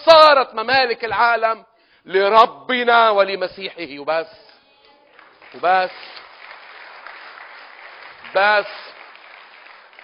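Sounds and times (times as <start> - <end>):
congregation applauding: 5.1 - 10.0.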